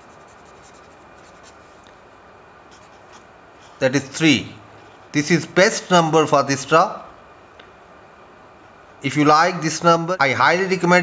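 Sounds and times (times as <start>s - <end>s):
pen scratching on paper: 0.0s - 1.6s.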